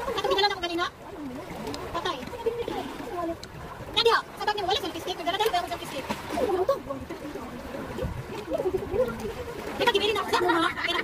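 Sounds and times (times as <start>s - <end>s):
seawater lapping among rocks: 0.0s - 11.0s.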